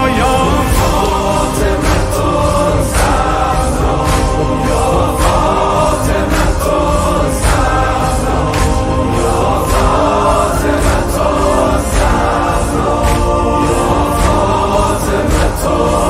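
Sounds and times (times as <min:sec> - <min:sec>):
man reciting through loudspeaker: 0:00.0 - 0:01.8
crowd chanting in unison: 0:00.0 - 0:16.0
rhythmic chest-beating strikes: 0:00.0 - 0:16.0.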